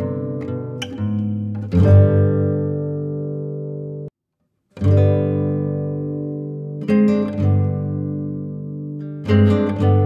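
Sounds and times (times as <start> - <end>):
guitar chords ringing: 0.0 - 4.1, 4.8 - 10.0.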